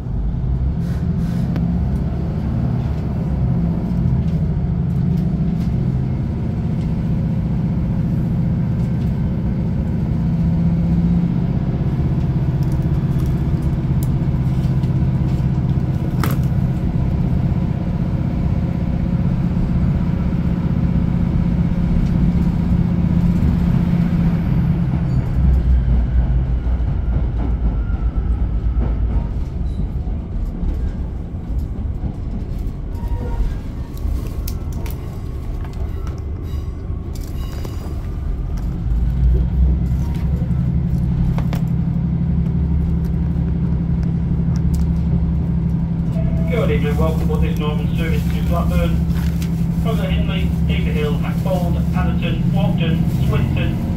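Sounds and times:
train diesel engine hum: 0.0 - 53.9.

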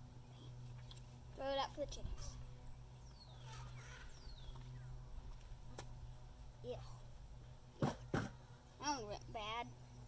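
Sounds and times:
faint bird calls: 2.0 - 5.3.

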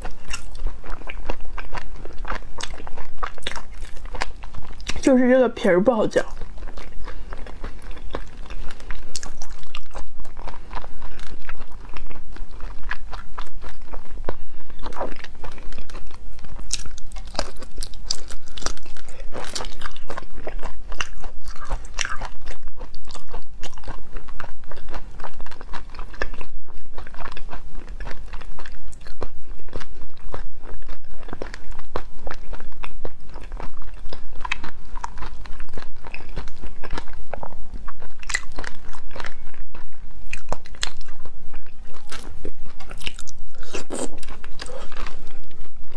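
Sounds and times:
chewing shrimp shells crunching: 0.0 - 45.9.

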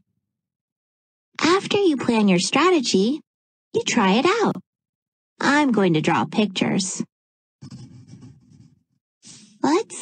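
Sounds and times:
pencil scribbling on paper: 7.6 - 9.0.

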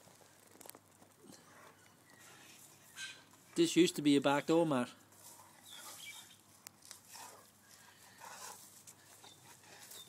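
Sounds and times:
dog sniffing and breathing: 7.0 - 10.0.

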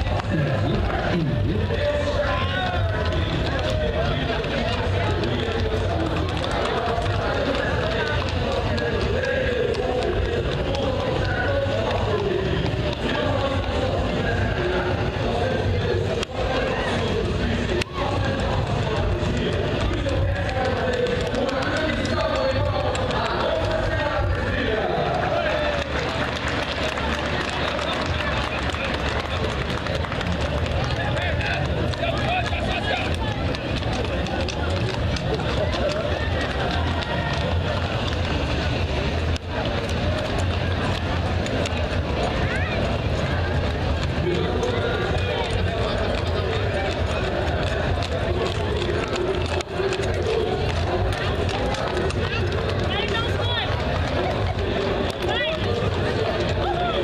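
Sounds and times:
crowd voices: 0.0 - 57.0
hooves clattering on pavement: 0.0 - 57.0.

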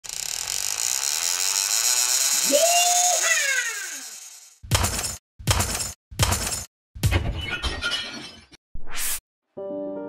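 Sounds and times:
high whirring: 0.0 - 4.6.

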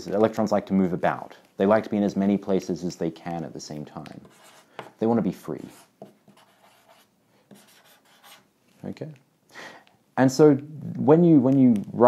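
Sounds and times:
marker pen scratching on paper: 4.0 - 5.0, 5.6 - 8.5.

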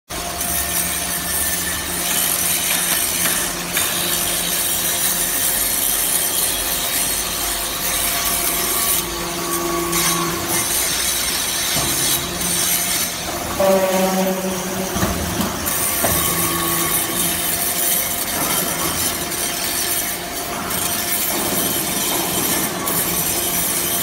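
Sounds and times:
hydraulic pump motor hum: 0.2 - 24.0
metal chips scraping rattle: 0.4 - 9.1, 15.6 - 24.0.

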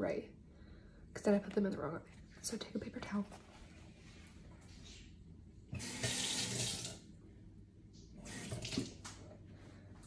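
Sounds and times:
water running from tap: 5.7 - 7.0, 8.2 - 9.2.

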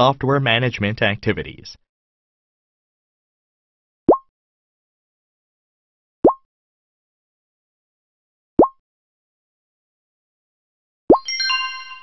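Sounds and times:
synthetic bloop pop: 8.6 - 8.8.

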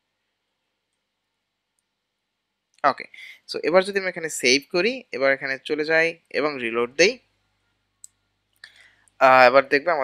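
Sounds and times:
man speaking: 2.8 - 7.2, 9.2 - 10.0.

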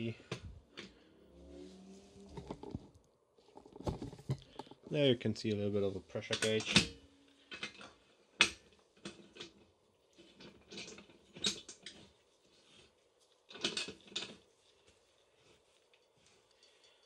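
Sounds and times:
metal clamps clicking and clinking: 6.2 - 9.5.

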